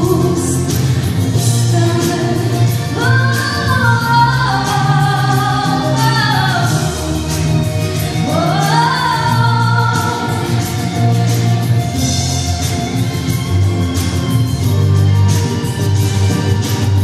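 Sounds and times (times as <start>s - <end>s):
instrumental accompaniment: 0.0s - 17.0s.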